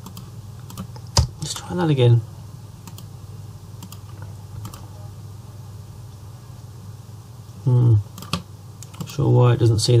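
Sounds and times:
keyboard and mouse clicks: 0:00.0 - 0:01.3, 0:02.8 - 0:03.1, 0:03.8 - 0:04.8, 0:08.2 - 0:09.2
steady low hum: 0:00.0 - 0:10.0.

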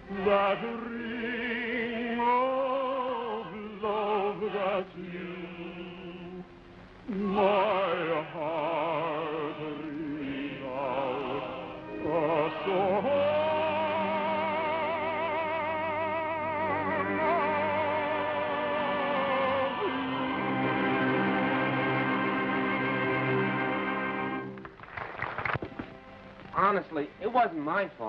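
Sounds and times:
man singing with vibrato: 0:00.0 - 0:06.5, 0:07.1 - 0:22.3
instrumental accompaniment: 0:11.3 - 0:27.8.

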